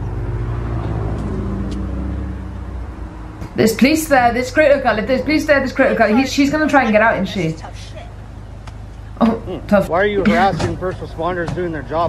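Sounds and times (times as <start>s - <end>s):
vehicle engine running: 0.0s - 12.0s.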